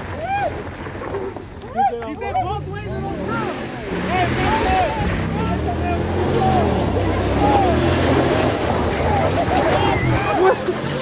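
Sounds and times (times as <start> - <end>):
people whooping: 0.1 - 0.6, 1.6 - 2.1, 6.4 - 8.0, 8.9 - 10.8
truck engine revving: 2.2 - 11.0.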